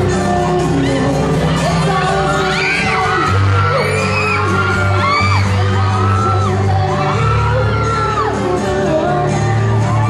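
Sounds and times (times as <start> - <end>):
crowd screaming and cheering: 0.0 - 10.0
music: 0.0 - 10.0.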